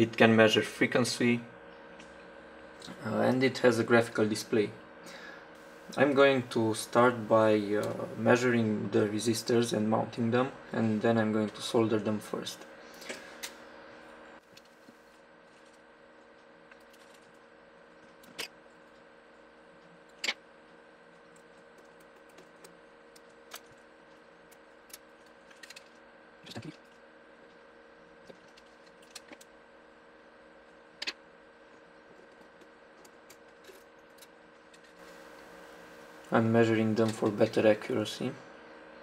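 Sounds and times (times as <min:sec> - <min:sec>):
faint electrical hum: 0:00.0 - 0:39.0.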